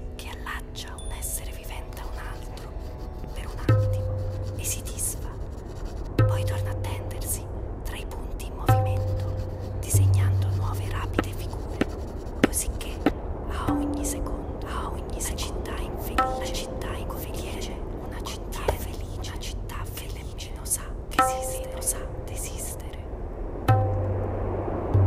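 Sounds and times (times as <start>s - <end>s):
whispering voices: 0.0s - 5.4s, 6.3s - 23.1s
low hum: 0.0s - 25.0s.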